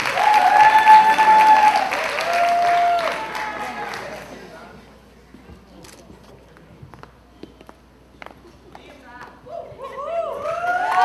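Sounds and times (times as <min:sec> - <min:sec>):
faint audience murmur: 0:03.3 - 0:10.4.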